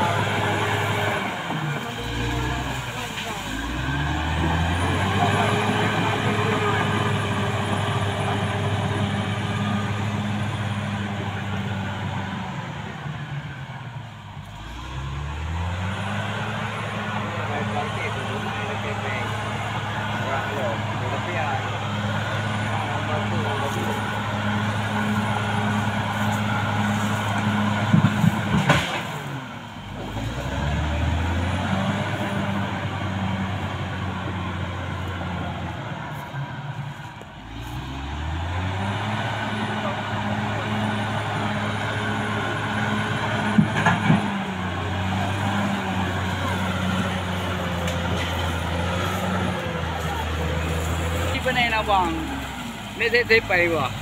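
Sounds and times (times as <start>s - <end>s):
bulldozer diesel engine under load: 0.0s - 54.0s.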